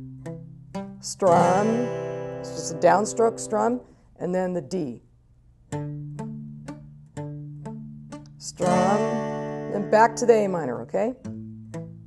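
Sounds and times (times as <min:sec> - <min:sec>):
palm-muted acoustic guitar arpeggio: 0:00.0 - 0:03.9, 0:05.7 - 0:12.0.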